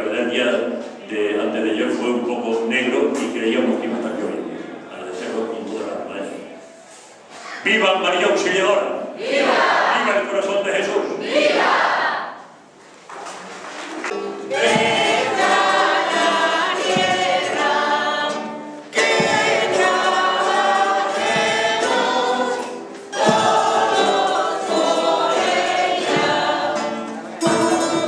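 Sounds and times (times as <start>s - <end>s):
group singing a hymn: 9.1s - 10.3s, 10.9s - 12.6s, 14.4s - 28.0s
folk string group playing: 13.9s - 28.0s.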